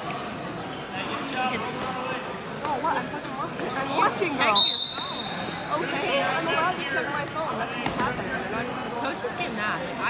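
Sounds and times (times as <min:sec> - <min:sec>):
general chatter in gym hall: 0:00.0 - 0:10.0.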